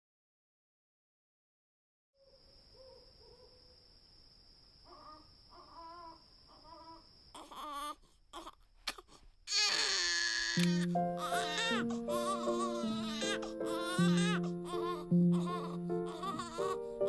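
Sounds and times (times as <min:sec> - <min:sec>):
baby crying: 0:04.9 - 0:17.0.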